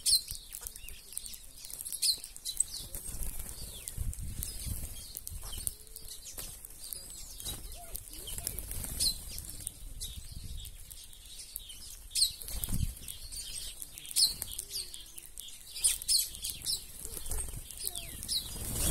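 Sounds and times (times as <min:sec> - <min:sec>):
birds chirping: 0:00.0 - 0:18.9
wings fluttering: 0:00.0 - 0:18.9.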